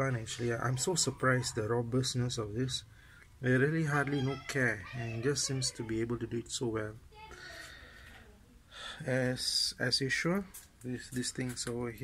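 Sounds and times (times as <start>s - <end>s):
man breathing: 2.9s - 3.4s, 7.3s - 9.1s.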